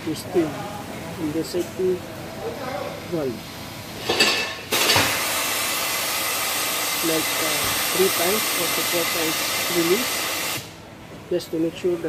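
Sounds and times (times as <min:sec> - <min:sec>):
safety valve hissing steam: 0:04.7 - 0:10.8.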